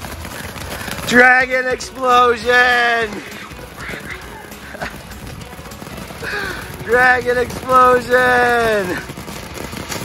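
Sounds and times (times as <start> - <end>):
faint voices: 0.0 - 9.9
fireworks hissing and popping: 0.0 - 10.0.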